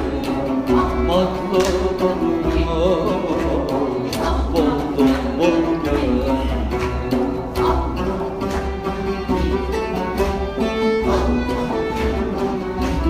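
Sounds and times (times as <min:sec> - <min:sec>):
oud melody: 0:00.0 - 0:13.0.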